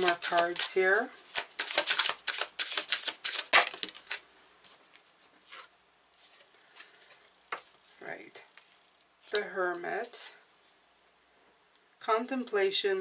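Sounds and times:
cards being shuffled: 0:00.0 - 0:08.0.

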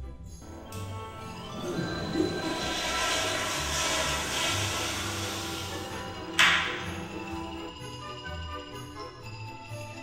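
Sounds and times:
background music: 0:00.0 - 0:10.0
toilet flushing: 0:00.5 - 0:07.7.

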